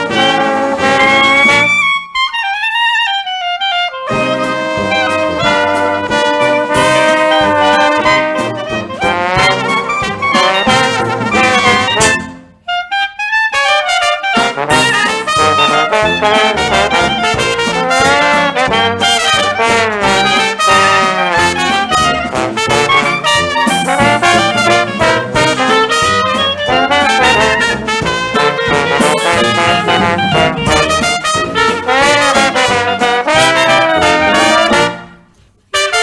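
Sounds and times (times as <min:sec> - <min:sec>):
trombone: 0:00.0 - 0:02.8, 0:03.7 - 0:36.0
jazz band playing: 0:00.0 - 0:36.0
trumpet: 0:00.0 - 0:36.0.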